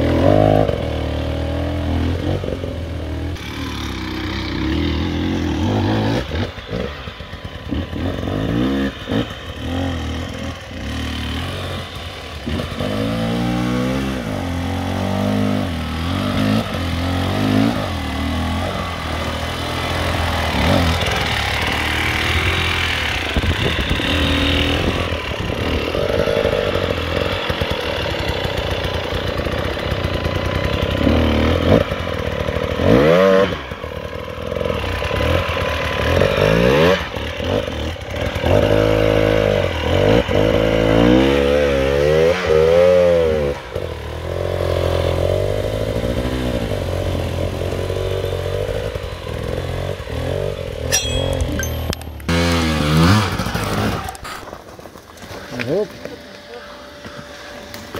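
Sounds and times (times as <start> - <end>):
dirt bike engines revving: 0.0 - 57.9.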